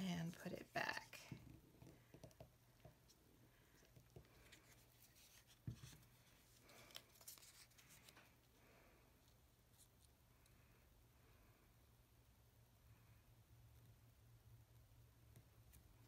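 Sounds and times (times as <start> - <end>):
paper rustling: 4.2 - 8.4.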